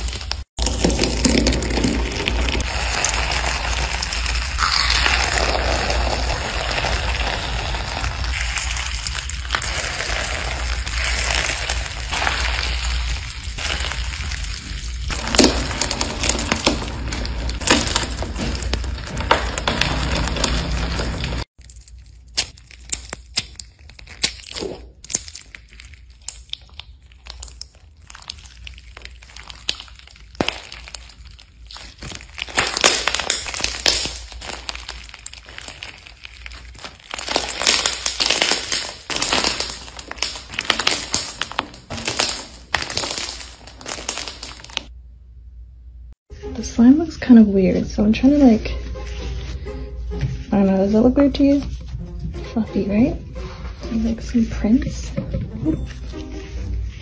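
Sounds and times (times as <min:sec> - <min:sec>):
slime crackling and popping: 0:00.0 - 0:45.0.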